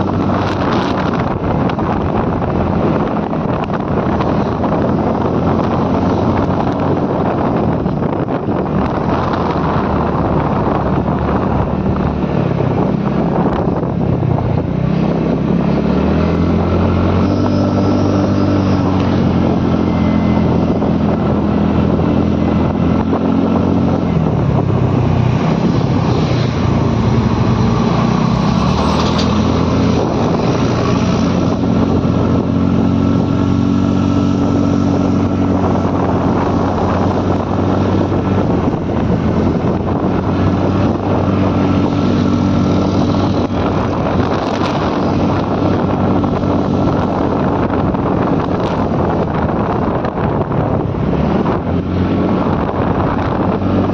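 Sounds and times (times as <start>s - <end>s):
scooter engine running: 12.4s - 53.9s.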